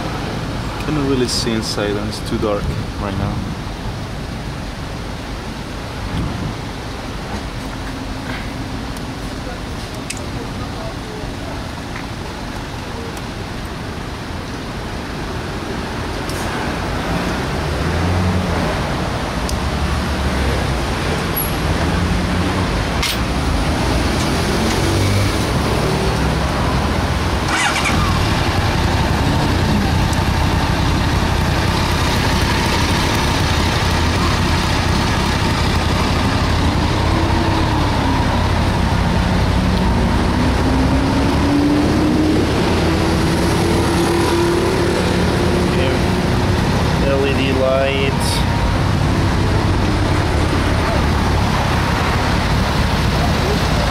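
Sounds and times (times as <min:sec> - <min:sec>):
motorcycle engine idling: 0:27.5 - 0:36.6.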